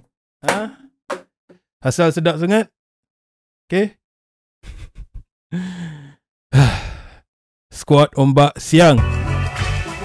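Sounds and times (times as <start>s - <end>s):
man sighing loudly: 5.5s - 7.2s.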